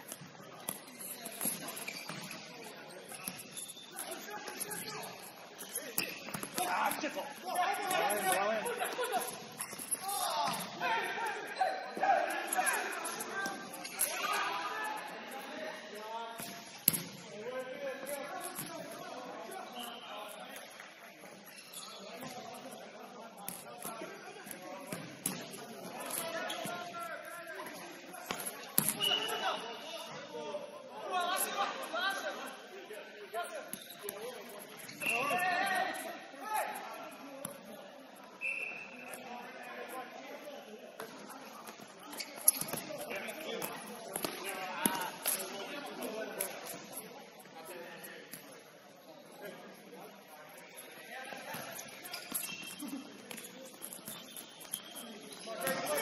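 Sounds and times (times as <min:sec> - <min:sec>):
players calling out and chattering: 0:00.0 - 0:56.0.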